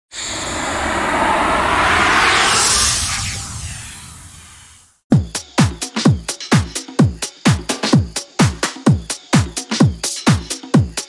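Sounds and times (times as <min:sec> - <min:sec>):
whooshing riser: 0:00.1 - 0:04.9
low rumble: 0:00.2 - 0:04.8.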